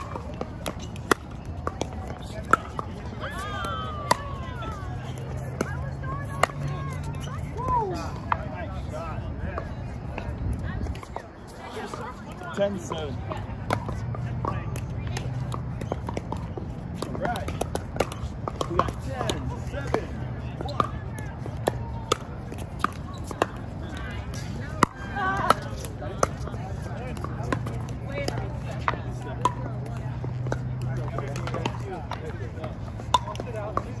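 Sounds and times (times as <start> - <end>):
voices: 0.0 - 34.0.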